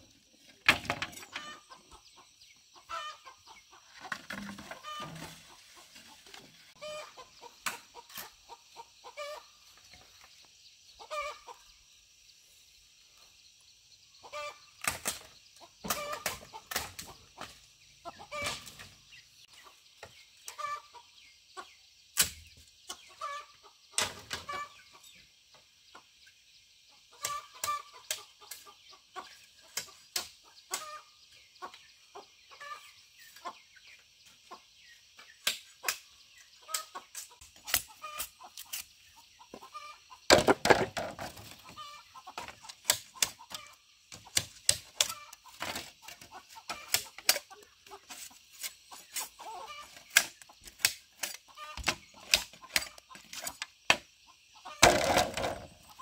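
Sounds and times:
chickens clucking: 0.0 - 12.2, 14.1 - 56.0
bamboo poles knocking: 40.3 - 41.5, 54.8 - 55.8.

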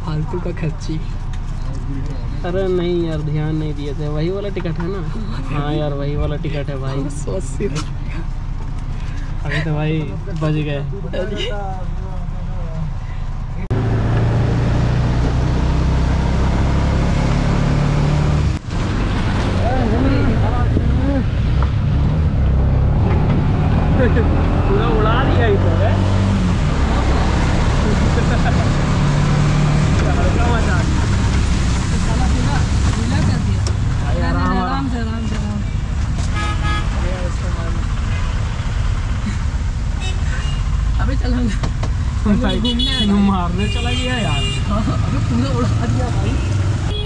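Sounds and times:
vehicle engine and road noise: 0.0 - 47.0.

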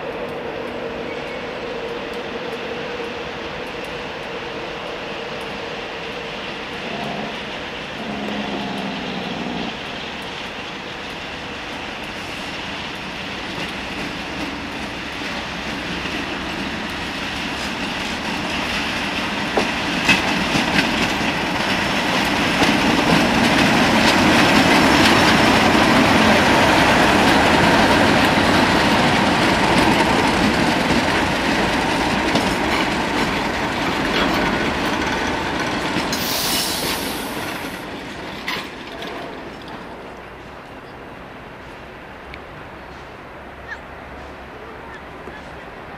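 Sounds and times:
diesel locomotive passing: 0.0 - 45.9
wheels clicking over rail joints: 0.0 - 45.9
brief hiss: 36.1 - 37.8.

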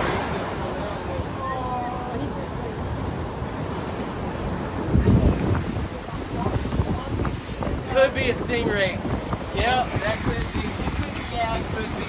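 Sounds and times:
surf breaking against rocks: 0.0 - 12.0
wind buffeting microphone: 0.0 - 12.0.

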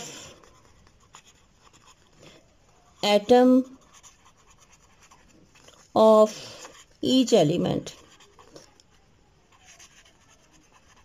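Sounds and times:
pen writing on paper: 0.0 - 2.2, 3.1 - 5.5, 7.9 - 8.8, 9.5 - 11.0.

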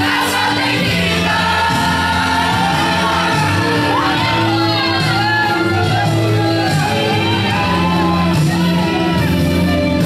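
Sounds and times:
person singing loudly: 0.8 - 9.3.

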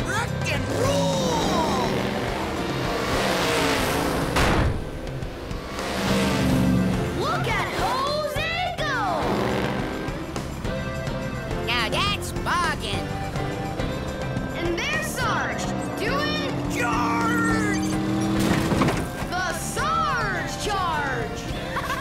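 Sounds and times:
monster truck engine effects: 0.0 - 10.8, 11.4 - 22.0
cartoon soundtrack music: 0.0 - 22.0.

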